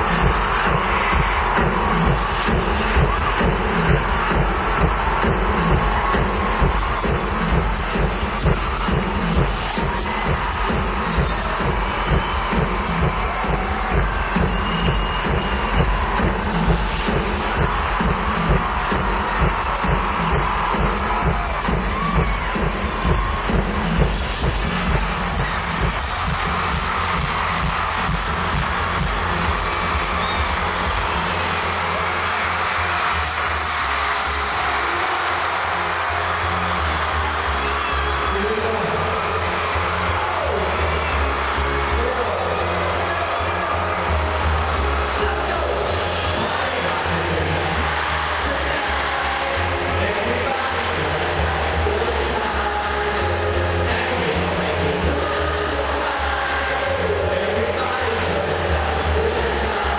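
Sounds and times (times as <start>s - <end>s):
crowd cheering: 0.0s - 59.9s
live electronic dance-pop music: 0.0s - 59.9s.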